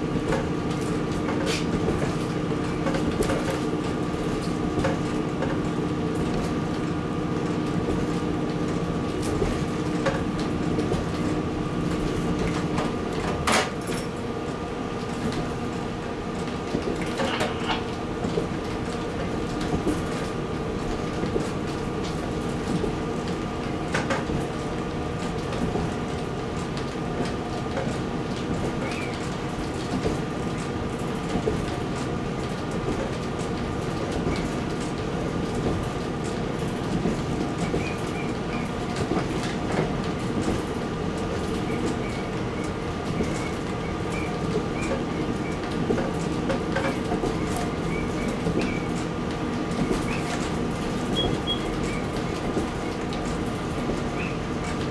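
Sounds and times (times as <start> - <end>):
diesel railcar engine drone: 0.0 - 54.9
wheels clicking on rails: 0.2 - 54.9.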